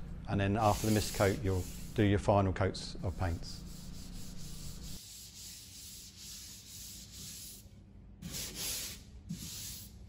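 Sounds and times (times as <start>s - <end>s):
sanding block scratching filler: 0.6s - 2.0s, 3.1s - 7.6s, 8.2s - 9.9s.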